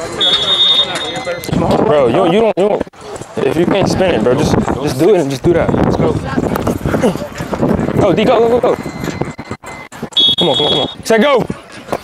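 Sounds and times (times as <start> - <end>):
players talking: 0.0 - 12.0
referee's whistle blast: 0.2 - 1.4, 10.2 - 11.0.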